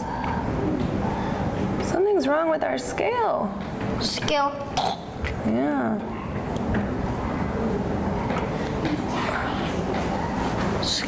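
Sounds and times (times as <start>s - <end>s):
murmur of children's voices: 3.9s - 11.0s.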